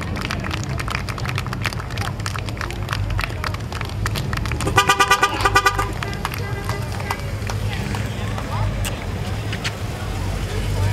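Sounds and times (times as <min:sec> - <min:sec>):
vehicles idling low rumble: 0:00.0 - 0:10.9
vehicle horn short toots: 0:04.7 - 0:07.2.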